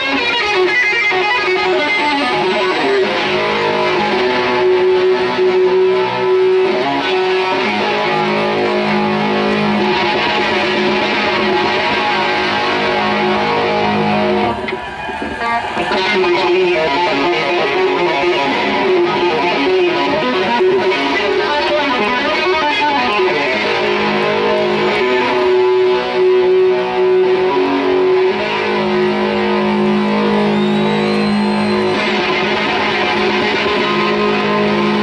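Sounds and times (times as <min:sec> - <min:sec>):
electric guitar: 0:00.0 - 0:35.0
live rock band playing: 0:00.0 - 0:35.0.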